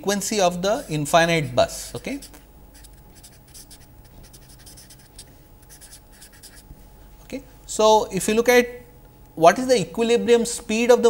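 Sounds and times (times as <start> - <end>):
marker scratching on paper: 2.1 - 6.7.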